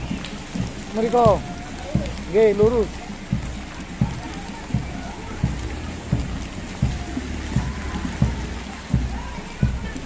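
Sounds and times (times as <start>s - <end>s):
footsteps thumping: 0.0s - 10.0s
rain falling on wet street: 0.0s - 10.0s.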